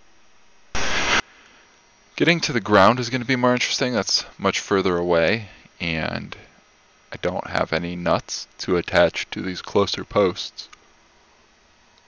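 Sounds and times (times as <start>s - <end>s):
faint background hiss: 0.0s - 12.0s
burst of hiss-like noise: 0.7s - 1.7s.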